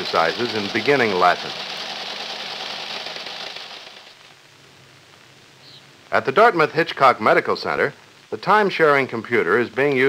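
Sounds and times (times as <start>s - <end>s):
teleprinter clattering: 0.0s - 4.2s.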